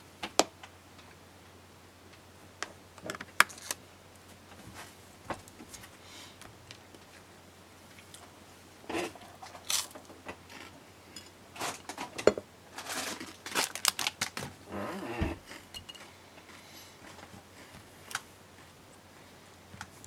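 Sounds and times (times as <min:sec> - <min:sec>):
clicks and scrapes of small objects: 0:03.0 - 0:03.8, 0:08.9 - 0:14.5.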